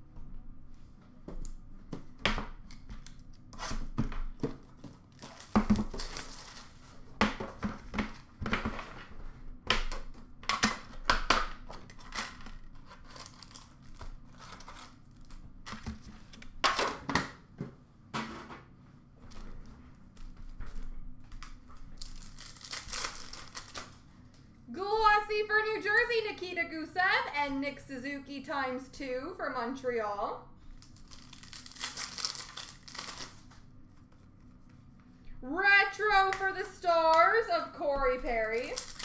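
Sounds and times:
wrappers crinkling and tearing: 0:04.8 - 0:07.0, 0:11.8 - 0:15.8, 0:21.3 - 0:24.0, 0:30.8 - 0:34.4, 0:38.4 - 0:39.0.

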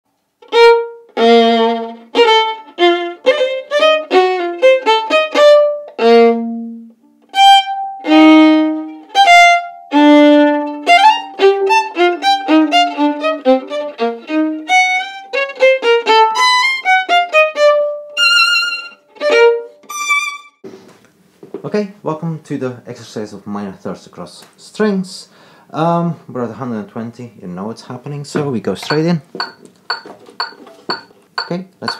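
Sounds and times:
solo violin playing: 0:00.4 - 0:20.6.

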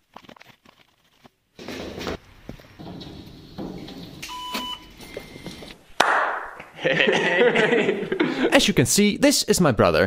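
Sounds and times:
men laughing: 0:06.7 - 0:08.6.

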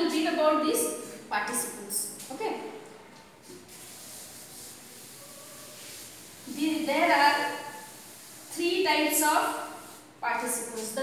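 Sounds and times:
duster rubbing chalkboard: 0:03.4 - 0:08.6.

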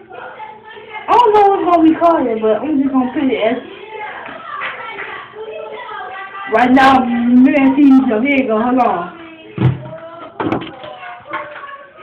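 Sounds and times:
faint voices: 0:00.0 - 0:12.0
sharp thump: 0:09.6 - 0:10.6.

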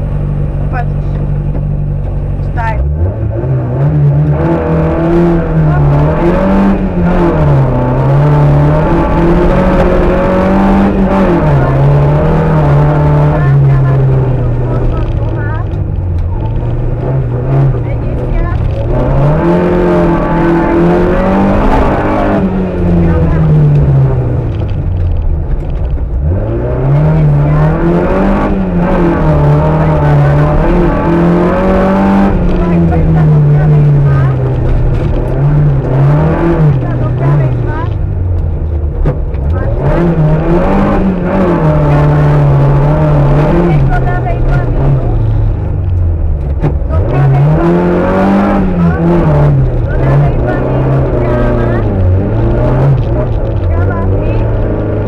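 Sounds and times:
car engine revving: 0:00.0 - 0:55.0.

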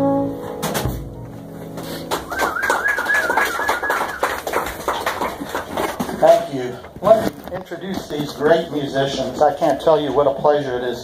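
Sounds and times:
audience applause: 0:02.1 - 0:06.4
person whistling warbling note: 0:02.3 - 0:04.3.

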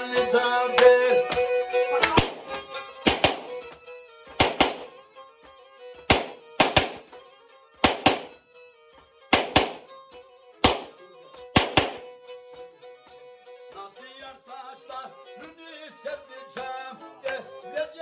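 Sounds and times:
bowed string instrument held notes: 0:00.0 - 0:13.8
sharp percussive strikes: 0:02.0 - 0:03.6, 0:04.3 - 0:05.0, 0:06.1 - 0:07.2, 0:07.8 - 0:08.4, 0:09.3 - 0:10.0, 0:10.6 - 0:10.9, 0:11.6 - 0:12.1.

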